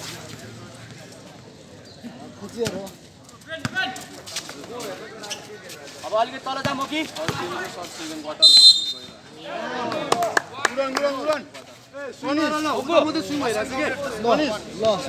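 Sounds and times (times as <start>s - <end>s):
referee's whistle blast: 8.4s - 9.2s.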